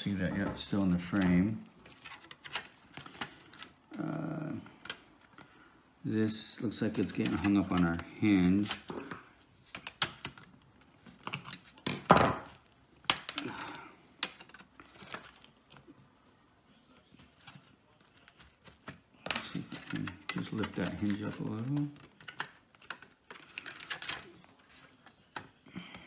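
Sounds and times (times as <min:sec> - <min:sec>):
person speaking: 0:00.0 - 0:01.8, 0:03.8 - 0:05.1, 0:06.0 - 0:09.3, 0:19.1 - 0:22.4.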